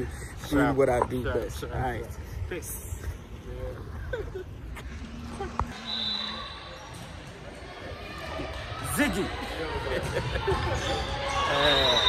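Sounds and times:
echoing gymnasium ambience: 0.0s - 12.0s.

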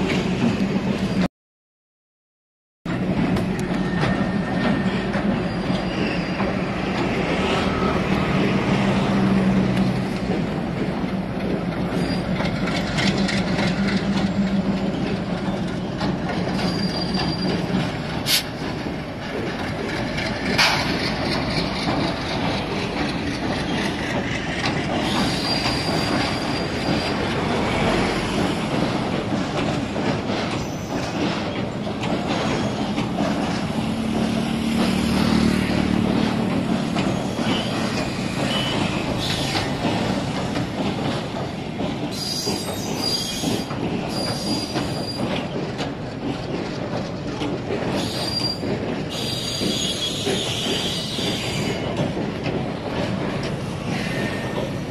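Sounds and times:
train wheels clacking on rails: 0.0s - 1.3s, 2.9s - 54.9s
high-pitched wheel squeals: 16.5s - 17.6s, 37.0s - 39.6s, 42.1s - 45.3s, 48.0s - 51.9s.

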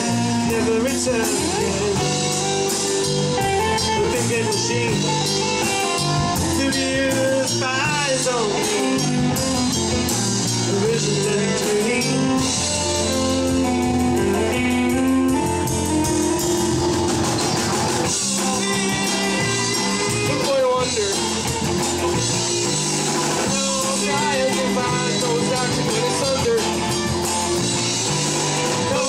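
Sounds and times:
live rock band playing: 0.0s - 29.0s
organ chords: 0.0s - 29.0s
wavering lead line: 0.1s - 29.0s.

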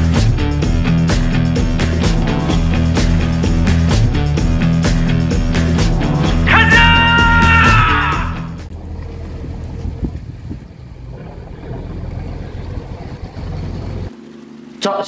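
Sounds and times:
music sting: 0.0s - 8.7s
boat engine rumbling: 0.0s - 15.0s
churning water: 8.6s - 15.0s.

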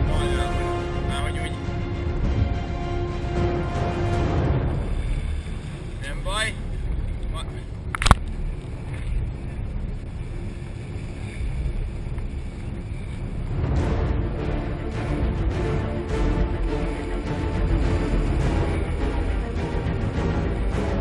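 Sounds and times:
wind buffeting microphone: 4.3s - 20.3s.

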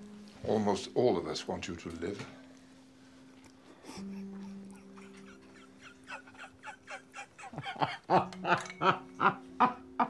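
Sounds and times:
woman laughing: 4.5s - 10.0s.

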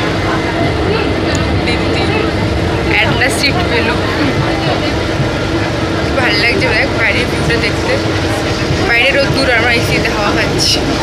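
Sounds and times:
train rumbling inside carriage: 0.0s - 11.0s
voices: 0.0s - 11.0s.

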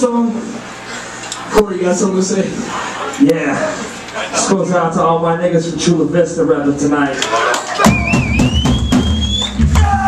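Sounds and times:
drums hitting: 7.8s - 10.0s
hardcore punk band playing: 7.8s - 10.0s.

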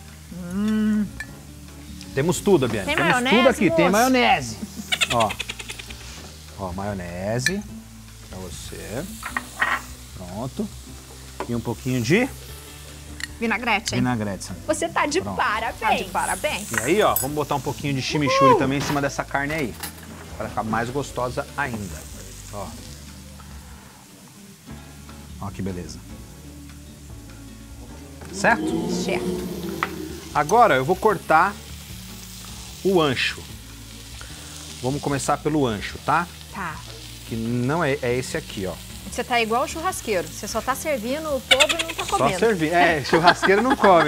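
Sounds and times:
meat sizzling on a grill: 0.0s - 44.0s
person humming: 0.3s - 1.2s, 28.2s - 30.6s.

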